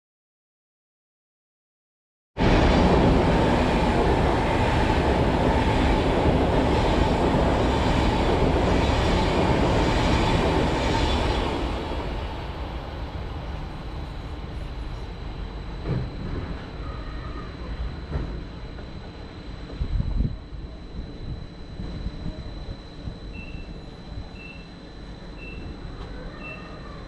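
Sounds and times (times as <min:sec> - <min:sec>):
train passing rumble: 0:02.4 - 0:24.3.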